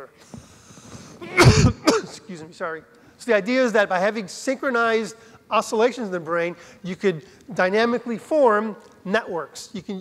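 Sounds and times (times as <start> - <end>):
man coughing: 1.2 - 2.3.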